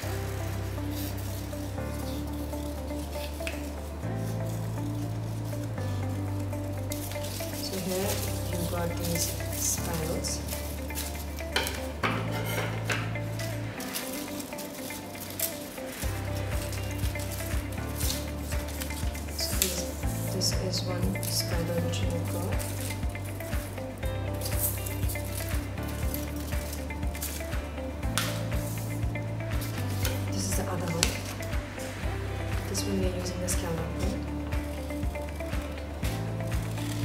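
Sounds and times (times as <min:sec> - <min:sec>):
paper rustling and crinkling: 0:00.0 - 0:05.8, 0:06.7 - 0:23.8, 0:24.4 - 0:31.6
background music with bass line: 0:00.0 - 0:37.0.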